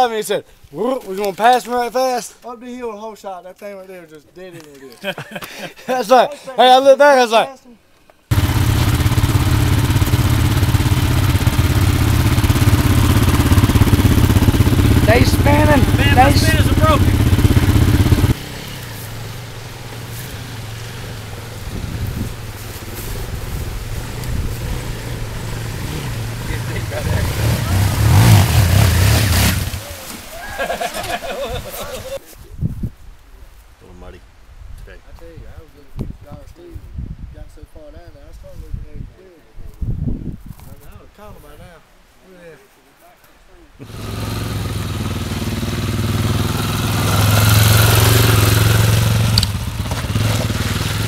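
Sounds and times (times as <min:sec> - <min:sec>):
dirt bike engine rumbling: 0:08.3 - 0:32.2, 0:43.8 - 0:51.0.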